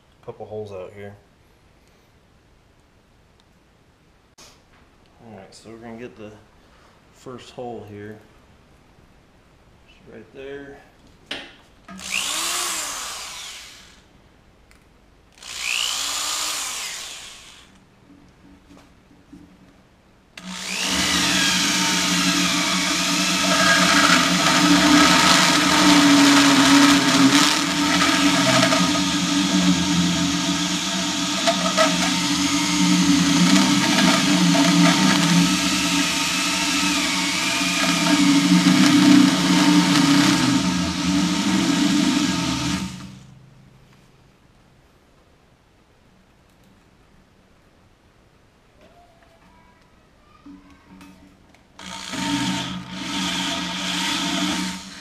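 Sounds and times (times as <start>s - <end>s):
electric drill motor running: 11.9s - 14.0s, 15.4s - 17.7s, 20.4s - 43.3s, 51.8s - 55.0s
hole cutter grinding into steel: 11.9s - 14.0s, 15.4s - 17.7s, 20.4s - 43.4s, 51.8s - 55.0s.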